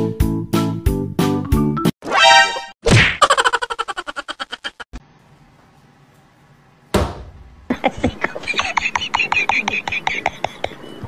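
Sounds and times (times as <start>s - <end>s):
bowl landing knock: 7.0s - 7.7s.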